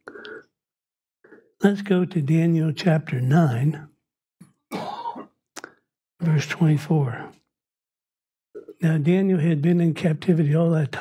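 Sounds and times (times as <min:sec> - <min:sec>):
man clearing his throat: 0:04.7 - 0:05.3.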